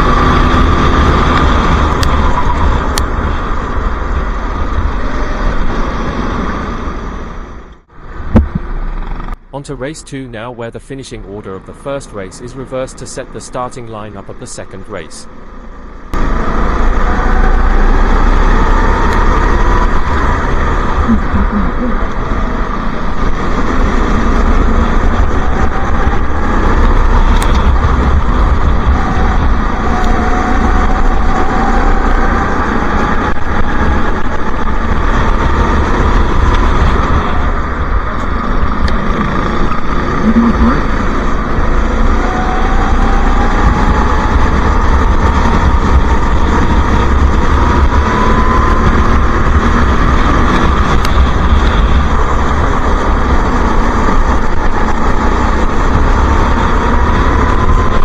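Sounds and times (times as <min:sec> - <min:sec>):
go-kart engine accelerating: 0:00.0 - 0:07.4, 0:15.4 - 0:58.0
wind rush on microphone: 0:00.0 - 0:09.4, 0:16.1 - 0:58.0
other kart engines: 0:00.0 - 0:58.0.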